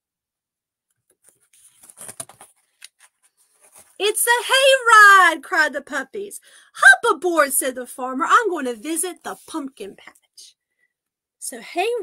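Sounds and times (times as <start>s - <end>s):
book page turning: 1.1s - 4.0s.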